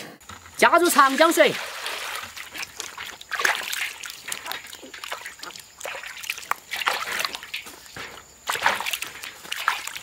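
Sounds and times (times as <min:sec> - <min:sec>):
water splashing in basin: 0:00.6 - 0:10.0
water poured into metal basin: 0:01.0 - 0:10.0.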